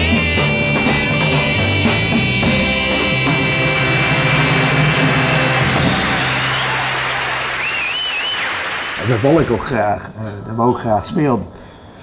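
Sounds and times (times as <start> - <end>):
wavering high tone: 9.7 - 12.0.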